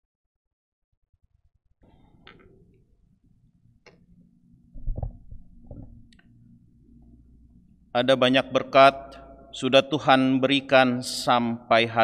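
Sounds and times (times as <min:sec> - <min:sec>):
microphone handling thumps: 0:04.7 - 0:06.1.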